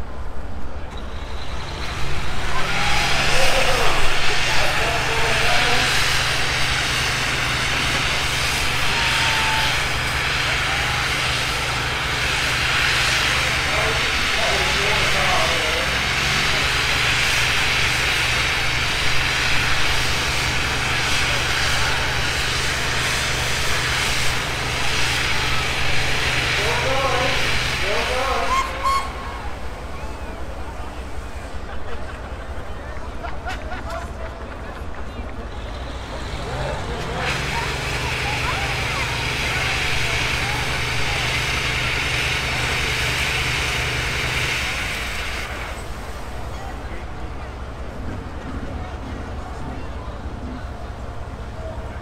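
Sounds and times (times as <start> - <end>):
crowd voices: 0.0 - 52.0
fire engine running: 0.0 - 52.0
water jet hissing: 1.2 - 29.9, 37.3 - 46.4.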